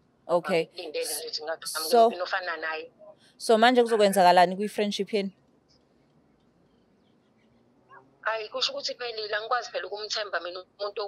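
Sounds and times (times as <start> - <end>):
person speaking: 0.3 - 2.4.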